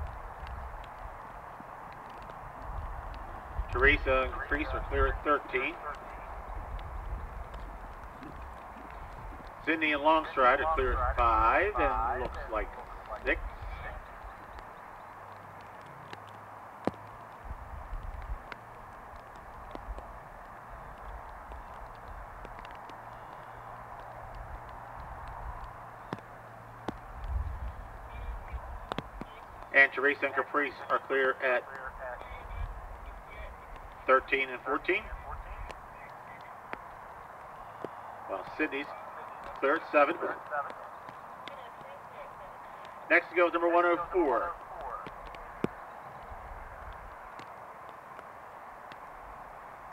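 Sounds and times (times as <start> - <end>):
faint irregular ticks: 0.0 - 43.6, 44.2 - 49.9
low rumbles: 0.0 - 49.9
outdoor background noise: 0.0 - 49.9
commentator speaking: 3.7 - 6.3, 9.6 - 14.1, 28.0 - 36.7, 38.3 - 45.1.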